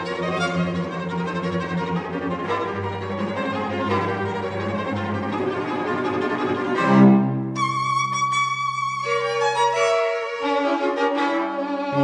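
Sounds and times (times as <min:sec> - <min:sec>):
violins and cello playing: 0:00.0 - 0:12.0.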